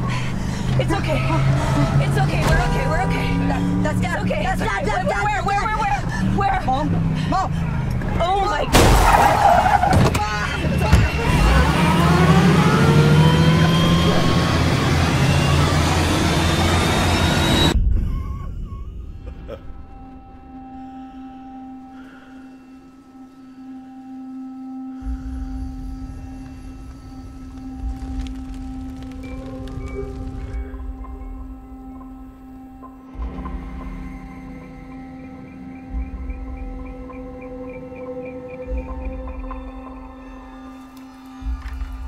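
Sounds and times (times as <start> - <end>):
engine rumble: 0.0 - 23.2, 25.0 - 42.0
sustained drone tone: 0.0 - 42.0
tyres squealing: 8.2 - 17.7
deep low rumble: 10.2 - 21.5.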